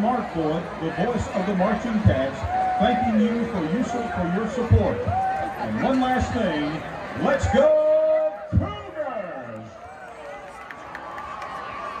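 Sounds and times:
stadium crowd talking: 0:00.0 - 0:12.0.

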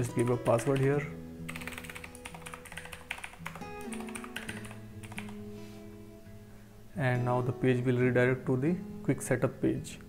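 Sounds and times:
soft background music: 0:00.0 - 0:10.0
keyboard keystrokes clicking: 0:01.5 - 0:05.4.

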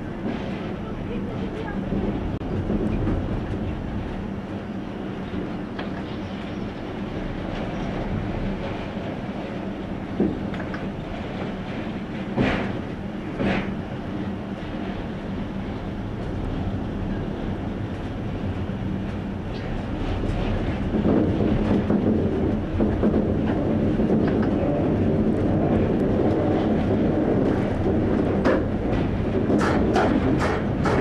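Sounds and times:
train rumble and hum: 0:00.0 - 0:31.0
wheels clicking over rails: 0:20.4 - 0:31.0.

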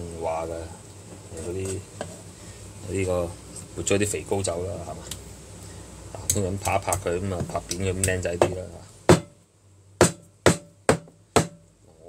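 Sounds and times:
cleaver chopping on cutting board: 0:08.4 - 0:09.3, 0:10.0 - 0:11.6.

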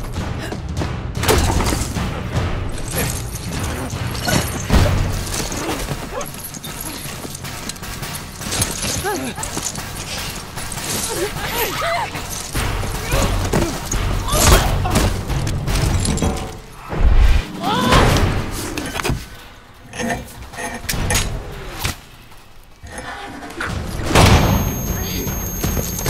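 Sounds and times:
heavy thuds and impacts: 0:12.6 - 0:19.3.

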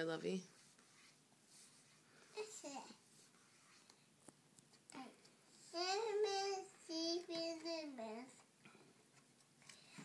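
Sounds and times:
toddler singing: 0:05.7 - 0:08.4.

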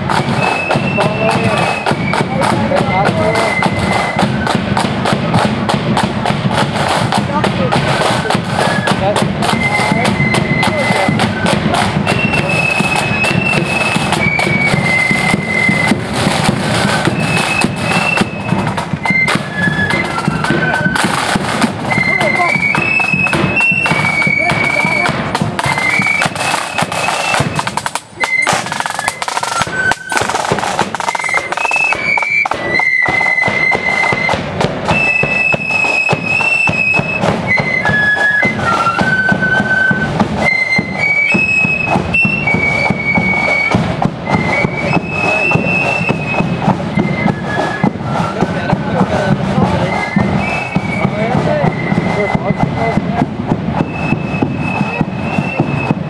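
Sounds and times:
flute band melody: 0:00.0 - 0:56.0
side drums: 0:00.0 - 0:56.0.

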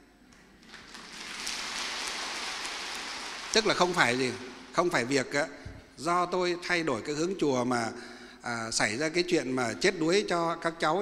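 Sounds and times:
audience applauding: 0:00.6 - 0:04.9.

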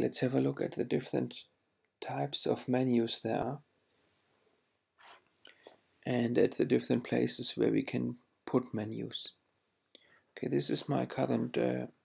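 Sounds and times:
faint breath and mouth sounds: 0:03.9 - 0:06.0.

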